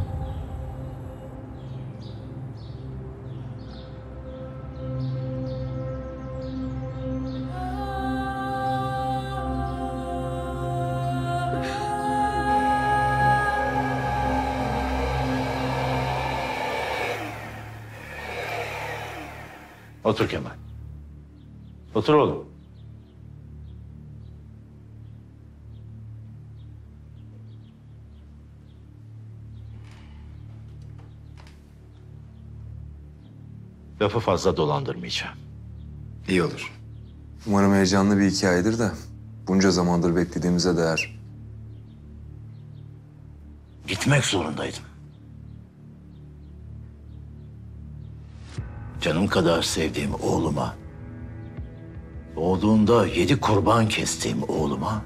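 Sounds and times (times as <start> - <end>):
ominous music drone: 0.0 - 20.1.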